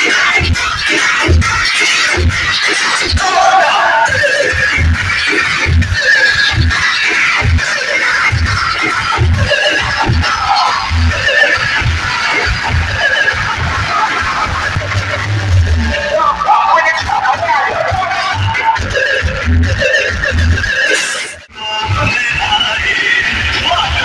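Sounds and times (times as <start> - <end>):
loud dance music: 0.0 - 24.0.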